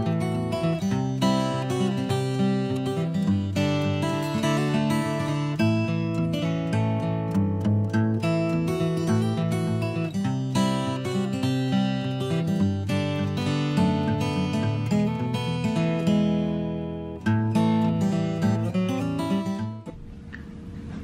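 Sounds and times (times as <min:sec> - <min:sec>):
strummed acoustic guitar chords: 0:00.0 - 0:20.0.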